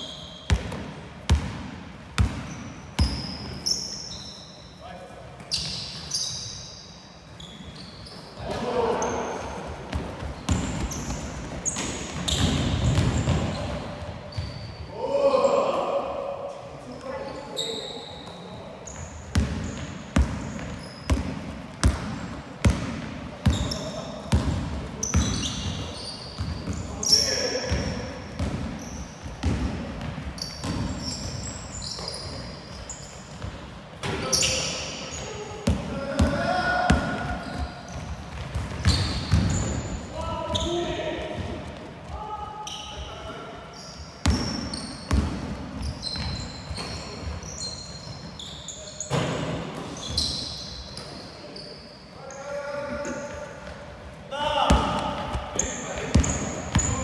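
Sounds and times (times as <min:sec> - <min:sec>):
sneaker squeaks: 0:00.0 - 0:01.5, 0:02.2 - 0:15.0, 0:16.8 - 0:41.5, 0:42.1 - 0:53.8, 0:54.6 - 0:57.0
basketball bouncing on wooden floor: 0:11.8 - 0:13.5, 0:38.3 - 0:39.7.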